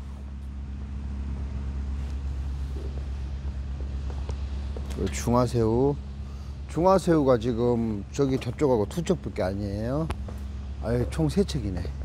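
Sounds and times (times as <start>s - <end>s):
machinery droning: 0.0s - 12.0s.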